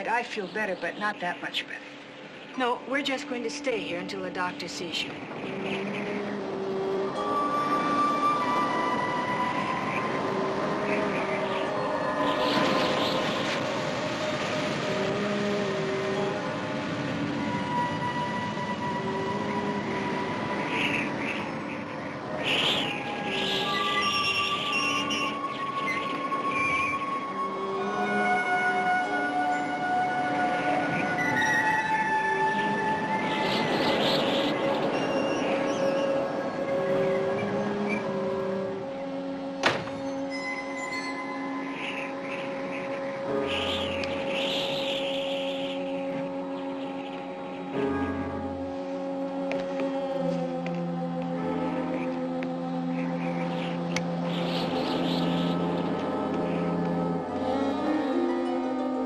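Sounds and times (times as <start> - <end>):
rushing noise: 0.0 - 58.2
eerie held notes score: 0.0 - 59.0.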